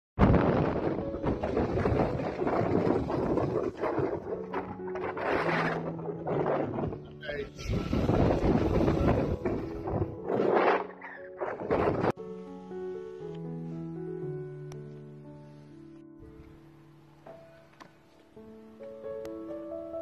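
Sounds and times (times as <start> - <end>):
storm surf breaking: 0.2 - 4.6
wind buffeting microphone: 0.2 - 12.2
background music with low notes: 0.2 - 20.0.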